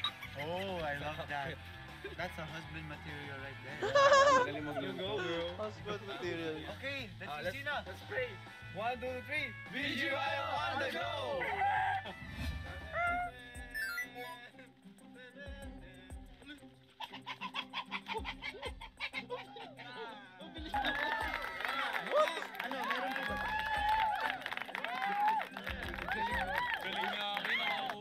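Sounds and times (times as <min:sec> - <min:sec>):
background music: 0:00.0 - 0:28.0
excited shouting voices: 0:09.7 - 0:12.2, 0:17.0 - 0:28.0.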